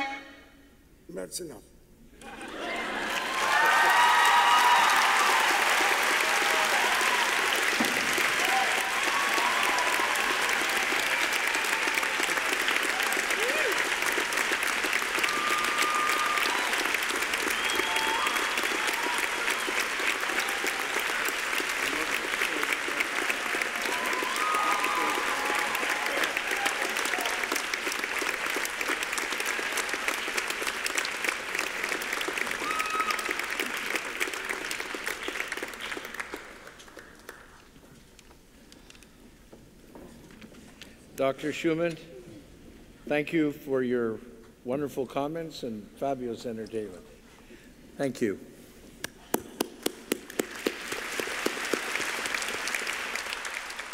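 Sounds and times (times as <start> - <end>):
large audience applauding: 2.2 - 37.8, 49.3 - 53.9.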